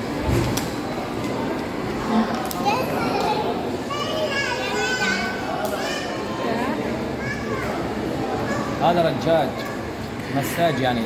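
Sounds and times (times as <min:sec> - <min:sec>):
indoor hall background noise: 0:00.0 - 0:11.0
children shouting and squealing: 0:02.6 - 0:11.0.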